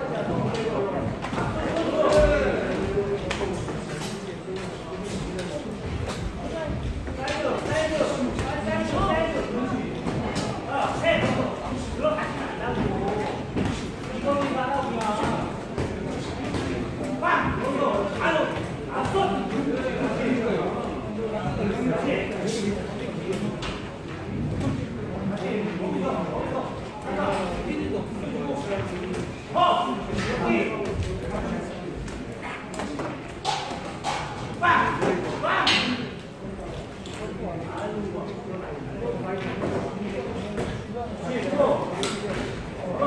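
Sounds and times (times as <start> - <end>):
voices calling out and talking: 0.0 - 43.0.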